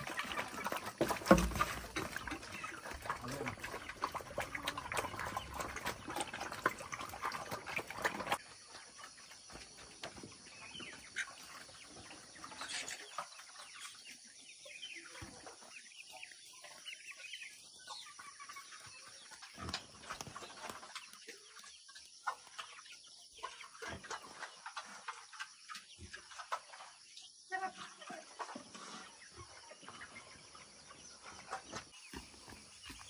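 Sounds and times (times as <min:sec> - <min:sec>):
chickens clucking: 0:00.0 - 0:33.0.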